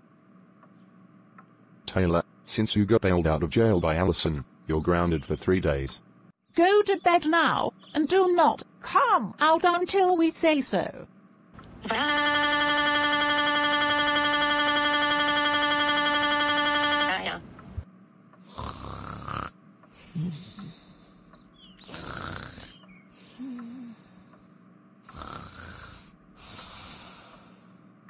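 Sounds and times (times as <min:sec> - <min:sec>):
synthesized voice wailing: 0:11.8 - 0:17.4
cartoon snoring: 0:18.4 - 0:20.8, 0:21.8 - 0:24.1, 0:25.1 - 0:27.6.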